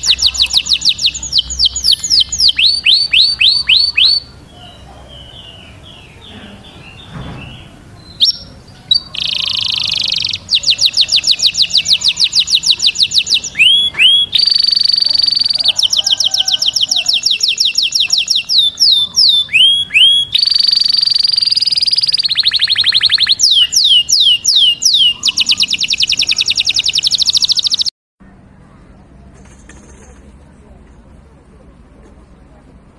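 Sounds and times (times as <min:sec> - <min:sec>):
canary singing trills: 0:00.0 - 0:27.9.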